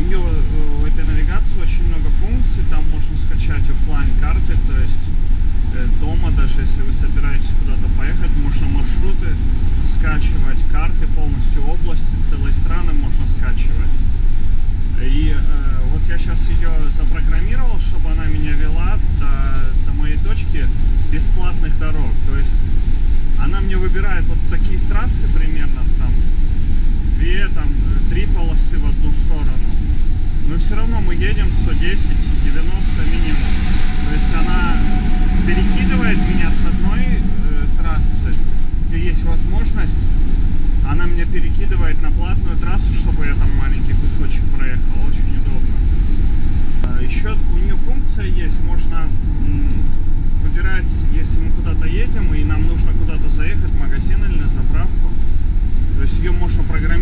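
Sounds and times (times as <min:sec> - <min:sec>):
road and engine rumble in cab: 0:00.0 - 0:57.0
indistinct voices talking: 0:27.2 - 0:40.2.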